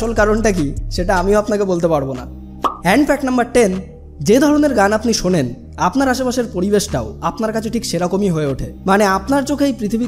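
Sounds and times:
low background music: 0:00.0 - 0:10.0
narration speech: 0:00.0 - 0:10.0
short pop: 0:02.6 - 0:02.8.

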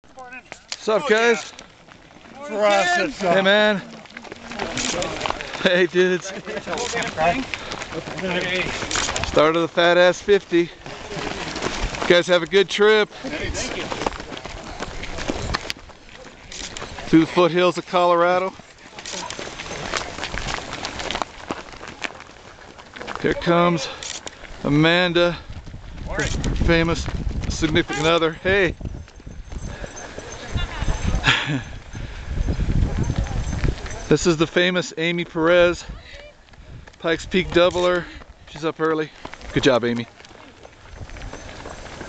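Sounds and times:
footsteps jogging on gravel: 0:00.0 - 0:42.0.

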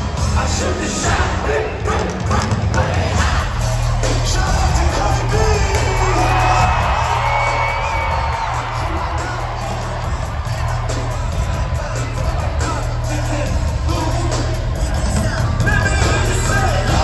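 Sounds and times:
crowd cheering and shouting: 0:00.0 - 0:17.0
loud hip-hop music with heavy bass: 0:00.0 - 0:17.0.

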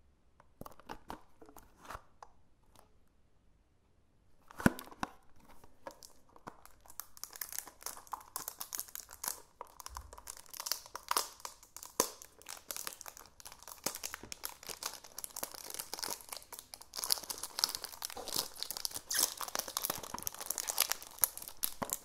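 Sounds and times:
plastic wrap crinkling: 0:05.8 - 0:22.0.

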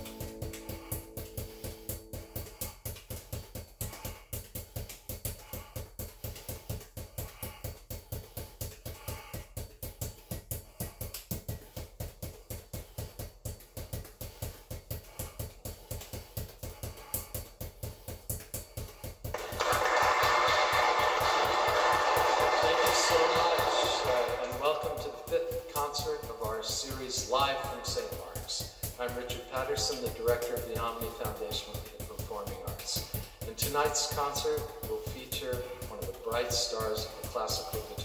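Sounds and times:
balls bouncing off hard floor: 0:00.0 - 0:38.0.

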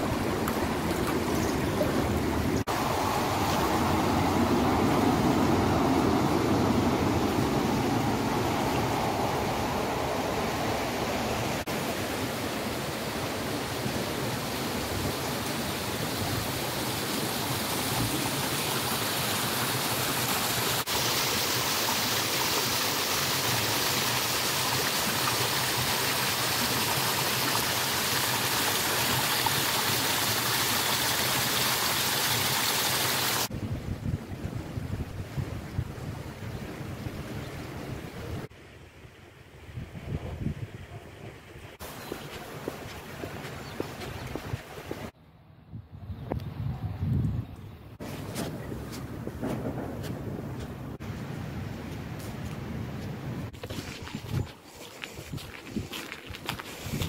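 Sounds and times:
gusty outdoor wind: 0:00.0 - 0:21.8, 0:33.4 - 0:57.0
river current flowing: 0:00.0 - 0:33.5
small stream running: 0:00.0 - 0:33.6, 0:34.3 - 0:45.2, 0:53.5 - 0:57.0.

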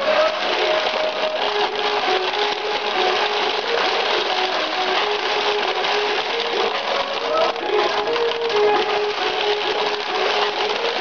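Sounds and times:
electronic melody of stepped notes: 0:00.0 - 0:11.0
steel balls rattling: 0:00.0 - 0:11.0.

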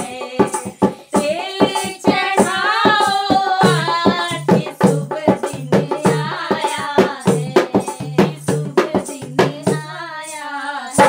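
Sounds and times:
women singing folk song: 0:00.0 - 0:11.0.

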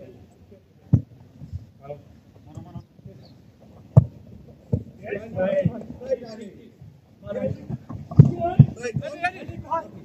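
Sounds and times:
footballers shouting: 0:07.2 - 0:10.0
dull thud: 0:07.4 - 0:09.6.

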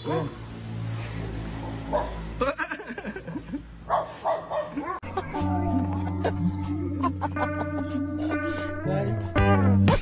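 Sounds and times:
dogs barking and yelping: 0:01.7 - 0:02.3, 0:03.8 - 0:06.5
music with low notes and melody: 0:05.0 - 0:10.0.

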